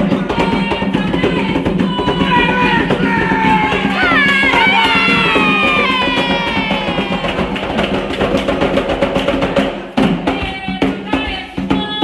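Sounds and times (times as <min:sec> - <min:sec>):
drums playing fast beat: 0:00.0 - 0:12.0.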